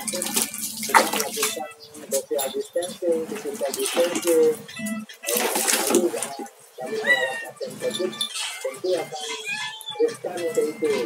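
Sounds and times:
garden hose running: 0:00.0 - 0:09.4
water splashing in a basin: 0:00.0 - 0:09.4.

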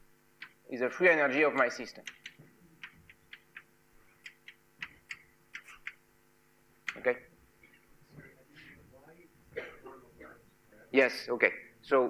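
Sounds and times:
chalk tapping and scratching: 0:01.6 - 0:06.0.

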